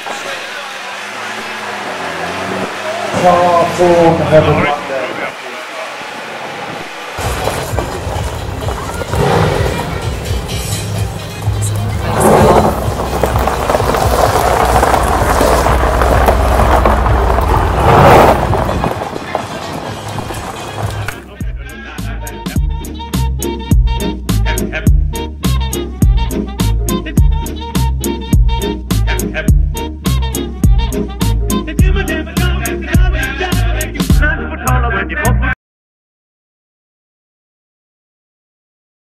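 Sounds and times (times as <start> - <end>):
sports car engine revving: 0.0 - 4.7, 7.2 - 21.2
voices: 0.0 - 22.8
music: 7.2 - 15.1, 18.5 - 35.6.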